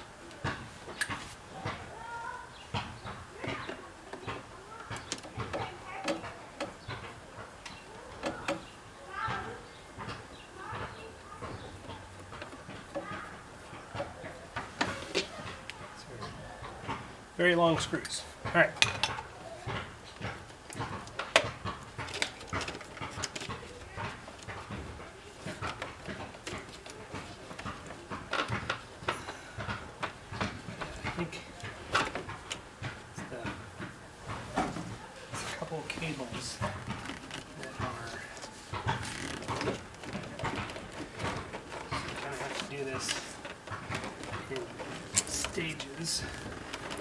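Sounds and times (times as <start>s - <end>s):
clicks and taps of tools and trim: 0.2s - 1.8s, 2.7s - 17.0s, 17.7s - 47.0s.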